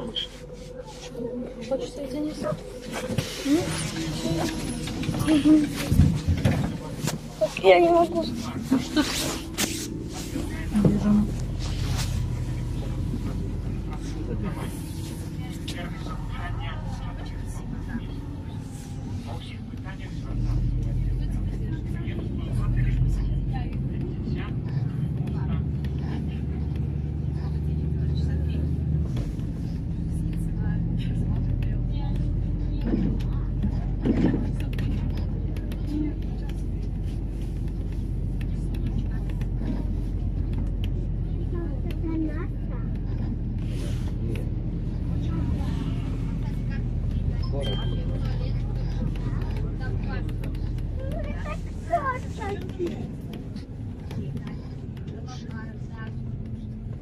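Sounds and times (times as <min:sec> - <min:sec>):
bus engine and road drone: 0:00.0 - 0:57.0
faint passenger voices: 0:00.0 - 0:57.0.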